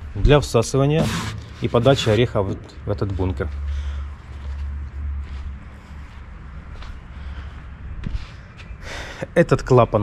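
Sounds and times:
footsteps on concrete: 3.0s - 8.8s.

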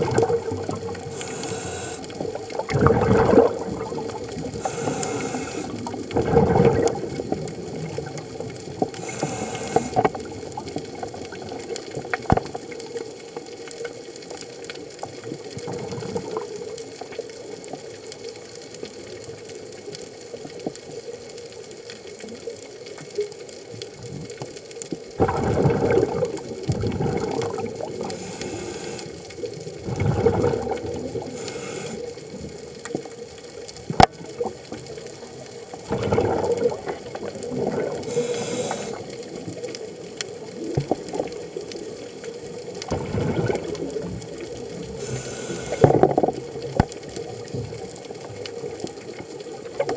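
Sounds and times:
exhaled bubbles gurgling: 0.0s - 49.9s
diver breathing through regulator: 1.0s - 2.4s, 4.4s - 6.0s, 9.0s - 10.2s, 28.0s - 29.3s, 31.2s - 32.3s, 37.8s - 39.2s, 44.9s - 46.2s.

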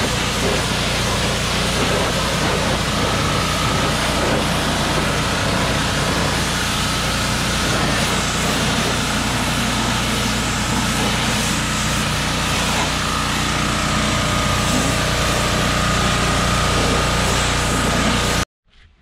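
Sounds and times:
pressure washer engine running: 0.0s - 18.4s
water jet hissing: 0.0s - 18.4s.

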